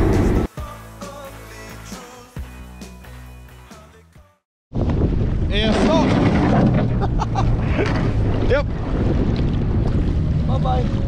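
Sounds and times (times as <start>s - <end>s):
wind noise on microphone: 4.7s - 11.0s
boat engine running: 6.6s - 11.0s.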